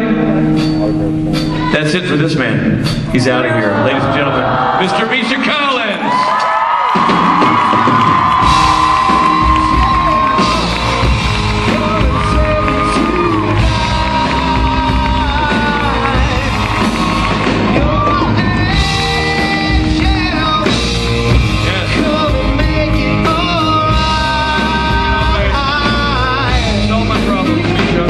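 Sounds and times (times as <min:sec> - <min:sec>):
audience yelling and whooping: 0:03.2 - 0:22.3
loud rock music with singing: 0:06.6 - 0:28.0.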